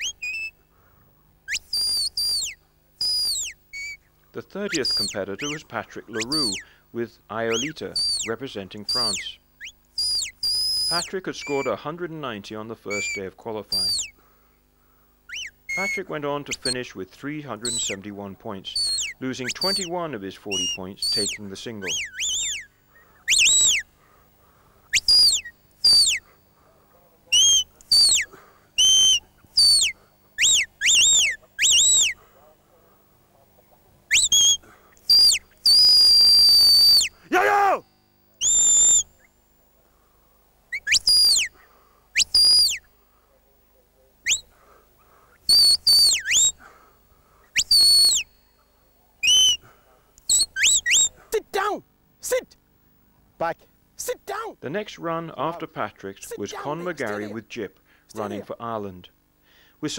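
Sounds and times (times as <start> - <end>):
shrill shepherd's whistle: 0.0 - 0.6, 1.5 - 4.0, 4.7 - 6.7, 7.5 - 8.3, 8.9 - 11.8, 12.9 - 14.2, 15.3 - 16.8, 17.6 - 18.0, 18.7 - 19.9, 20.5 - 23.9, 24.9 - 26.4, 27.3 - 32.2, 34.1 - 37.8, 38.4 - 39.3, 40.7 - 42.9, 44.2 - 44.5, 45.4 - 46.7, 47.5 - 48.5, 49.2 - 51.2.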